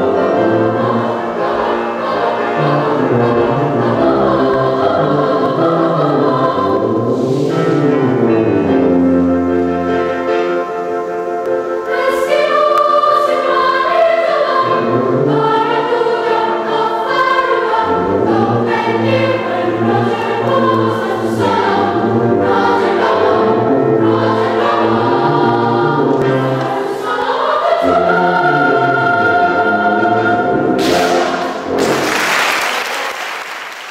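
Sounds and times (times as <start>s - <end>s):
tuba low sustained notes: 0.0s - 11.0s, 14.6s - 16.4s, 17.7s - 26.8s, 27.8s - 32.0s
children's choir singing: 0.0s - 32.2s.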